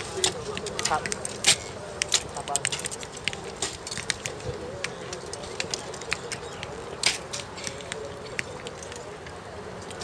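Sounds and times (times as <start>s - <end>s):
dove cooing: 4.2s - 9.7s.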